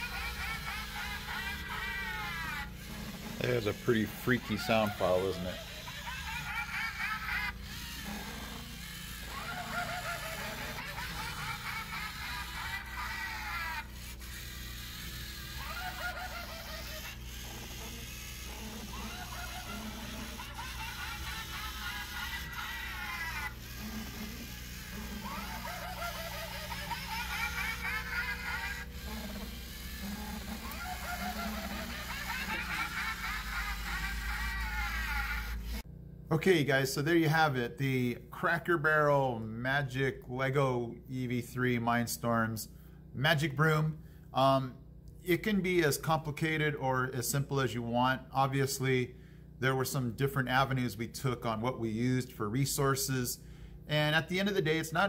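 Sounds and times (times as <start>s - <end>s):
witch cackling laughter from speaker: 0.0s - 2.7s, 4.4s - 8.4s, 9.3s - 13.9s, 18.5s - 35.8s.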